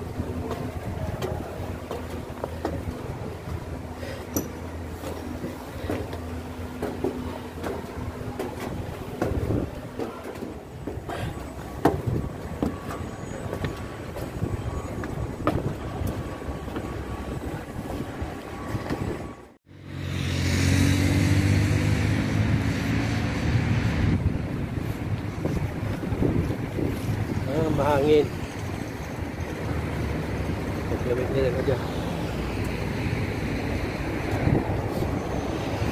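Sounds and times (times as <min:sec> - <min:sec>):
low outdoor rumble: 0:00.0 - 0:20.1, 0:21.4 - 0:35.9
construction site noise: 0:00.0 - 0:35.9
scattered knocks and clicks: 0:04.3 - 0:16.9.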